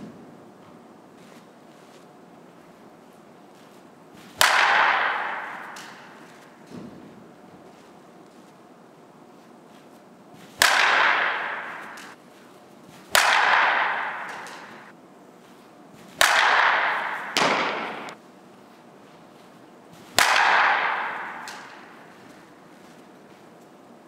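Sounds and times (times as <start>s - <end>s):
bat hitting ball with ringing crack: 4.3s - 7.0s, 10.6s - 12.2s, 13.0s - 14.9s, 16.2s - 18.2s, 20.0s - 22.7s.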